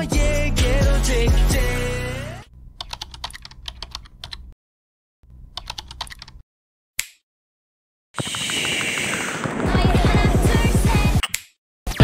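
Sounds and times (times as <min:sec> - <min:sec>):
computer keyboard typing: 0:02.8 - 0:04.5, 0:05.6 - 0:06.4.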